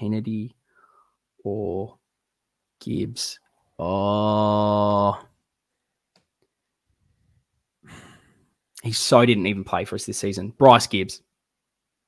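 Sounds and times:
man talking: 0:00.0 - 0:00.6, 0:01.4 - 0:02.0, 0:02.8 - 0:05.4, 0:08.7 - 0:11.3
man sighing: 0:07.8 - 0:08.6.

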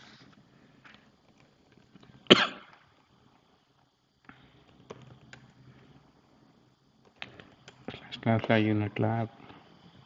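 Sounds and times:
person coughing: 0:02.3 - 0:02.7.

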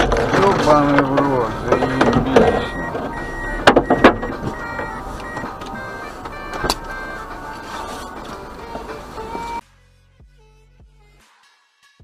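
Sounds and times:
vehicle hum: 0:00.0 - 0:09.6
sharp knocks: 0:00.9 - 0:05.6.

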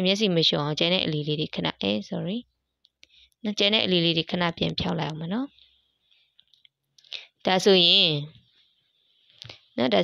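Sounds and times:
person speaking: 0:00.0 - 0:05.8, 0:07.0 - 0:08.5, 0:09.3 - 0:10.0.

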